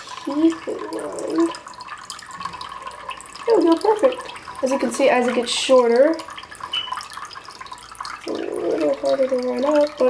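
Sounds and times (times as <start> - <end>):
water trickling into glass dish: 0.0 - 10.0.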